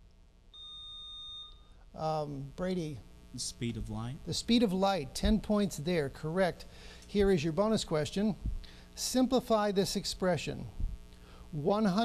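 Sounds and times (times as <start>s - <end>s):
high electronic buzzer beep: 0.6s - 1.8s.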